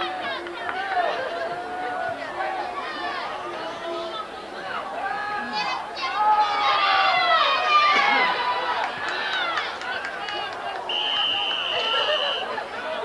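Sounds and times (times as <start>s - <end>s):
spectators yelling and cheering: 0.0s - 13.0s
referee's whistle blast: 10.9s - 12.5s.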